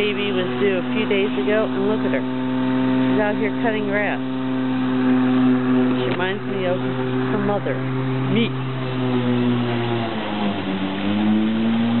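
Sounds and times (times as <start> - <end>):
electric lawn mower motor hum: 0.0 - 12.0.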